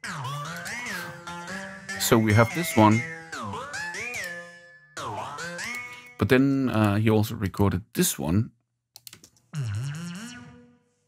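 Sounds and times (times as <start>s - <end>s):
pitch-bending synthesizer: 9.6s - 11.0s.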